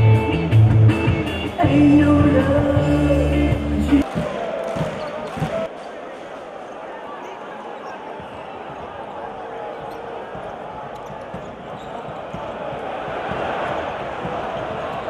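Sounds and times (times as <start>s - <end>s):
crowd noise with voices: 0.0s - 15.0s.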